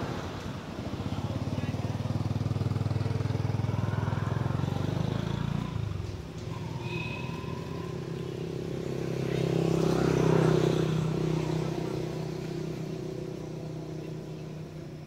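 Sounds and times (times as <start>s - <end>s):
vehicle engine passing by: 0.0s - 15.0s.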